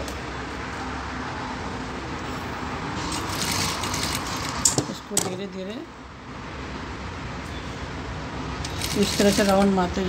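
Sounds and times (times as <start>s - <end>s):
sewing machine running: 3.1s - 4.4s, 8.6s - 9.8s.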